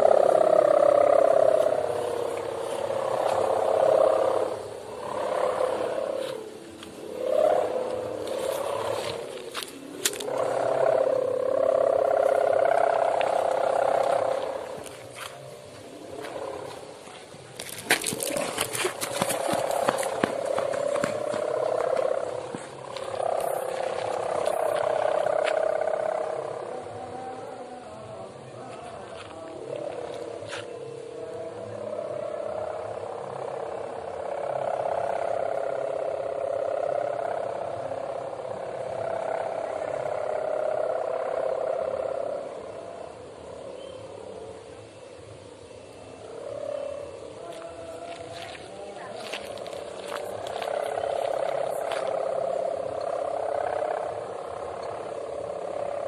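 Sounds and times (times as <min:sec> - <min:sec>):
crackling noise: 0:00.0 - 0:56.0.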